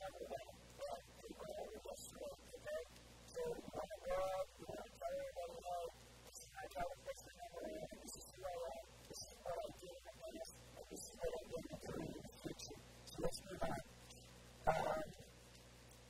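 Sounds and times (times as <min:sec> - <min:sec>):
man talking: 0:00.0 - 0:13.9, 0:14.6 - 0:15.2
faint steady hum: 0:00.0 - 0:16.0.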